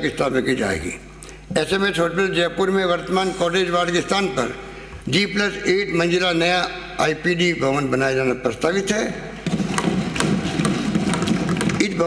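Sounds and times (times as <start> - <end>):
people thumping desks: 9.4 - 12.0
person giving a speech: 11.7 - 12.0.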